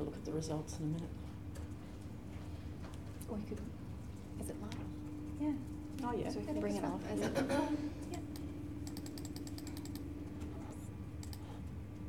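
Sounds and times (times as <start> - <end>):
steady low hum: 0.0 - 12.0
laptop keyboard typing: 8.3 - 10.1, 11.2 - 11.6.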